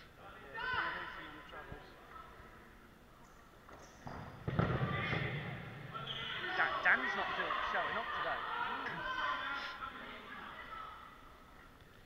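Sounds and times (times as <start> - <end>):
dodgeball thud: 4.0 - 6.0.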